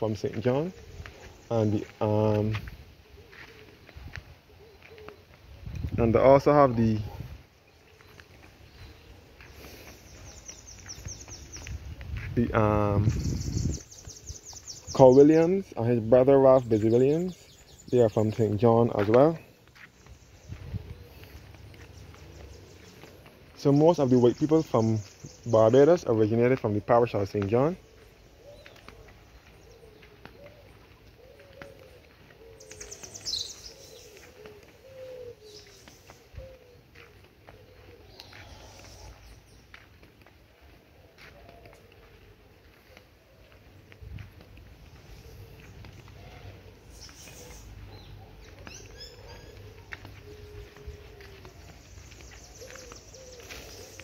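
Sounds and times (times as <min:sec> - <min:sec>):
birds calling low notes: 0:00.0 - 0:54.0
footsteps on paved path: 0:00.0 - 0:54.0
high falling bird call: 0:27.8 - 0:39.7, 0:45.0 - 0:54.0.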